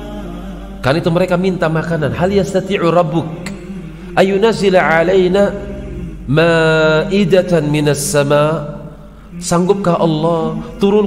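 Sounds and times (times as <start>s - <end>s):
low background drone: 0.0s - 11.0s
man speaking: 0.8s - 3.6s, 4.2s - 5.7s.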